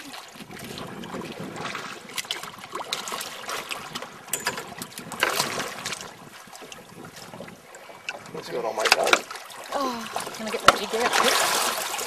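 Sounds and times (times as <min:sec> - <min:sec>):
water lapping against a boat: 0:00.0 - 0:12.0.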